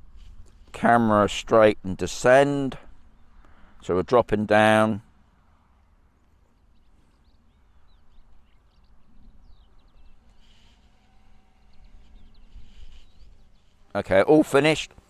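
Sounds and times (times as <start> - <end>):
short bird chirps: 6.4 - 13.9.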